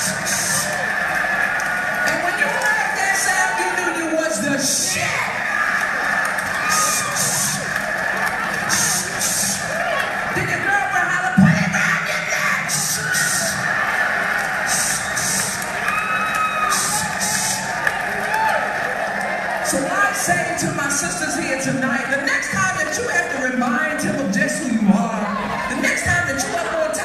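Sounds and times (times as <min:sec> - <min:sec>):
crowd cheering over sound system: 0:00.0 - 0:27.0.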